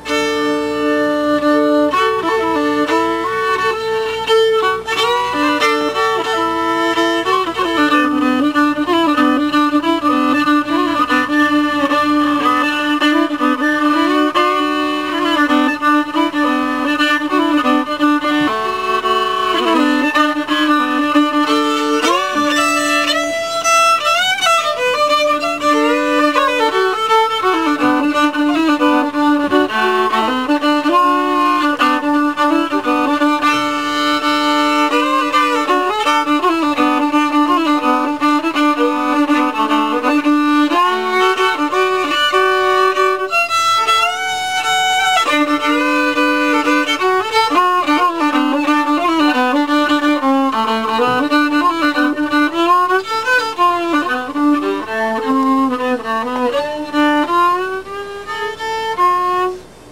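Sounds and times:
fiddle drone note: 0.0 - 59.9
solo fiddle tune: 0.0 - 59.9.

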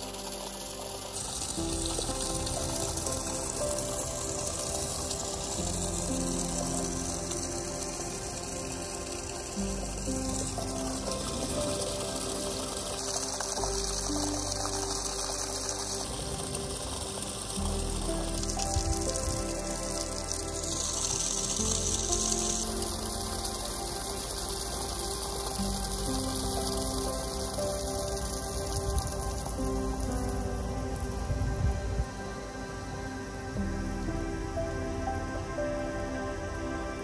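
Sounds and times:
water gushing from hand pump: 0.0 - 32.5
background music: 0.0 - 37.0.

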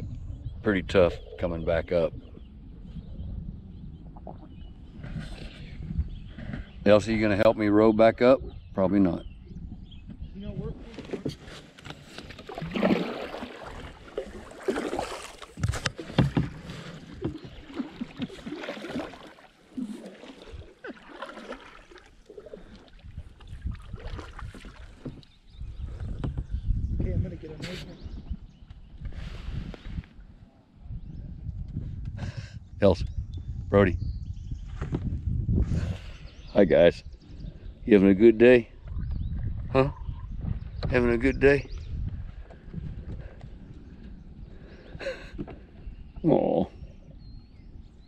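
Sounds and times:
paddles splashing in water: 10.7 - 26.2.

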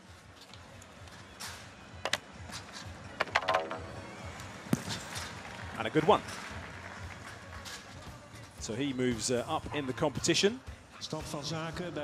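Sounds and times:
faint music: 0.0 - 12.0
stadium background: 0.8 - 12.0.

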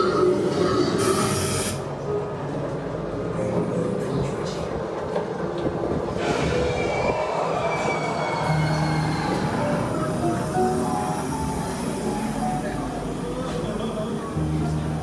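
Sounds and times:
high screech sliding down: 6.2 - 10.2.

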